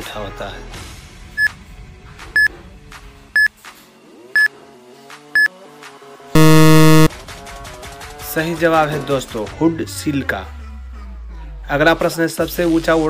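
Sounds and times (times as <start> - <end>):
loud buzzer: 6.4 - 7.1
short high beeps: 6.4 - 7.1.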